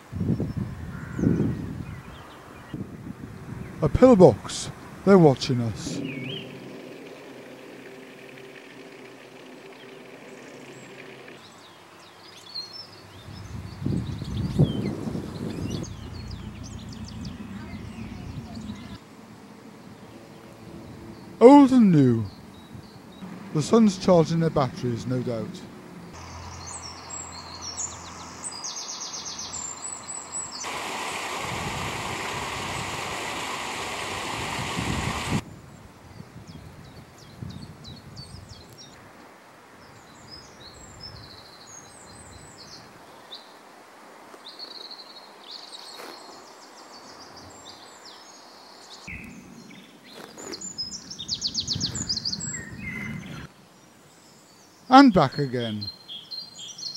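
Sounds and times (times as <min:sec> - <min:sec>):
small birds chirping: 0:05.3 - 0:19.0, 0:19.8 - 0:35.4, 0:44.4 - 0:56.9
faint steady hum: 0:12.8 - 0:21.6
low uneven rumble: 0:13.0 - 0:19.0
water rushing through gates: 0:30.3 - 0:35.4.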